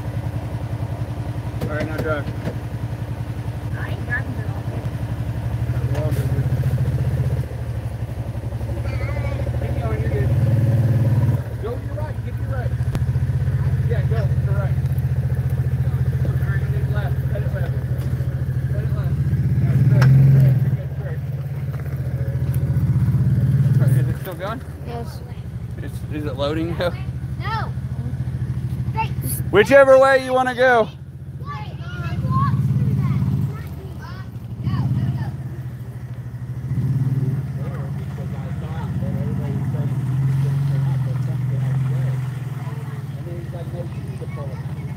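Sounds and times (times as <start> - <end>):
engine revving in surges: 3.7 - 44.9.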